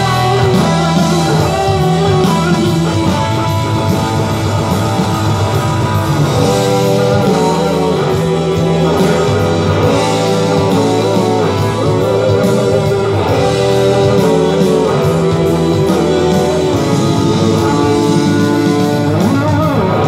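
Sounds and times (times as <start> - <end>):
electric guitar lead notes: 0.0 - 20.0.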